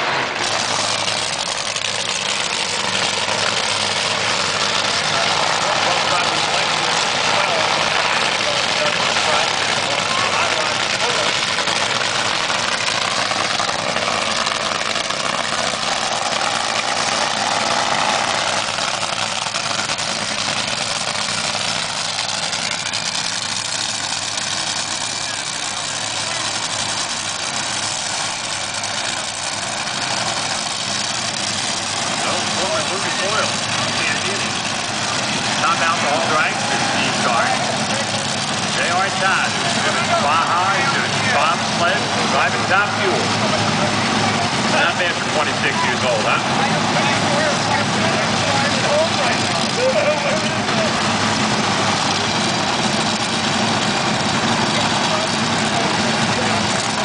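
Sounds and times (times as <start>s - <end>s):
dragster engines running: 0.0s - 57.0s.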